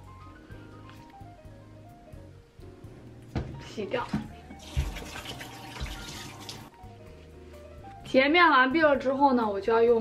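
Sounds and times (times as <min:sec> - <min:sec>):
background music: 0:00.0 - 0:10.0
water splashing in a sink: 0:04.0 - 0:06.8.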